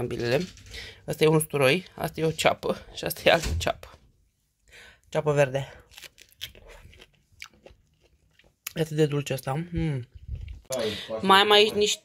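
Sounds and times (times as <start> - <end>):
chewing pineapple crunching: 5.8 - 10.8.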